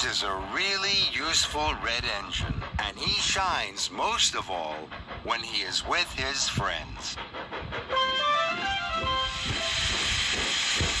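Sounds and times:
broad hiss: 9.3s - 11.0s.

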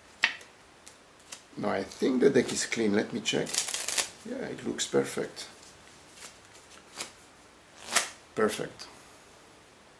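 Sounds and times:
playing cards swishing: 5.6s - 7.2s, 7.8s - 8.2s.

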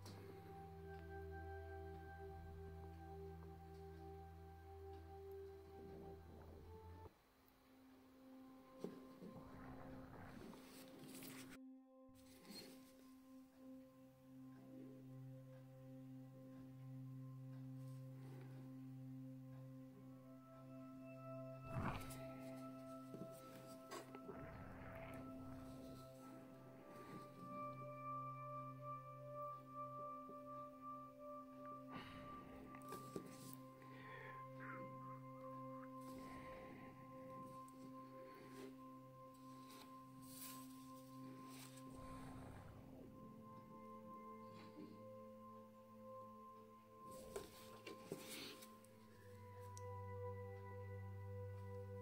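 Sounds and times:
soft ambient music: 0.0s - 52.0s.

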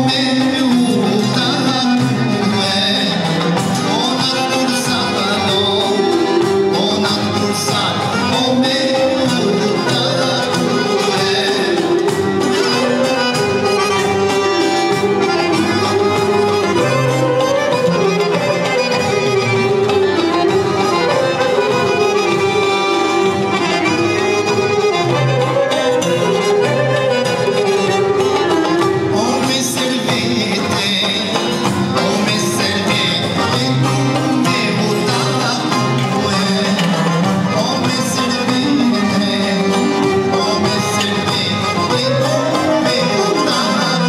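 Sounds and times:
accordion playing winding melody: 0.0s - 44.0s
steady musical accompaniment: 0.0s - 44.0s.

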